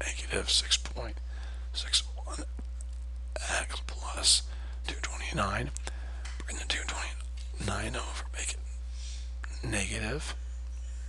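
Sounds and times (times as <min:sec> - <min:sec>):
person whispering: 0:00.0 - 0:02.6, 0:03.4 - 0:05.8, 0:06.4 - 0:08.7
steady low hum: 0:00.0 - 0:11.0.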